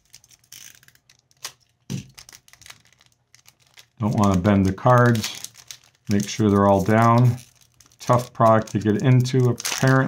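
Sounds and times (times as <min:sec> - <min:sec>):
foil wrapper tearing and crinkling: 0:00.0 - 0:10.0.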